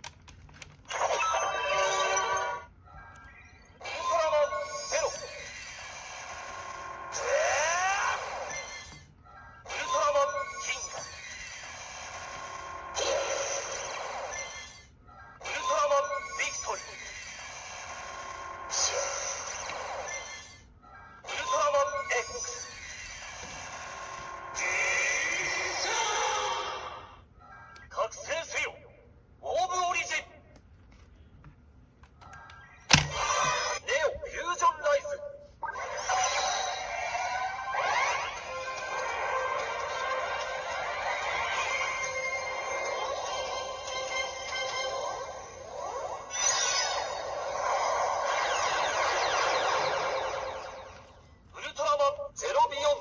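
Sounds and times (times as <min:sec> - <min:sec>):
toy recorded voice calls: 0:00.9 - 0:17.7, 0:18.6 - 0:28.8, 0:32.2 - 0:51.0
electronic effect with rising whoosh: 0:37.7 - 0:51.2.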